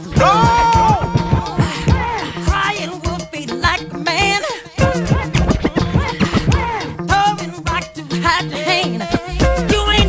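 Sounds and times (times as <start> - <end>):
hip-hop beat: 0.0 - 10.0
turntable scratching: 4.8 - 7.3, 8.8 - 10.0.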